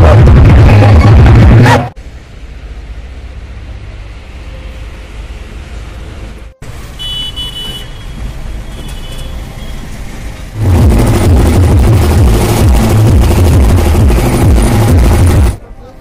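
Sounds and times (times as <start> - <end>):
music with heavy beat: 0.0 - 1.9, 10.6 - 15.6
vehicle road noise: 0.0 - 16.0.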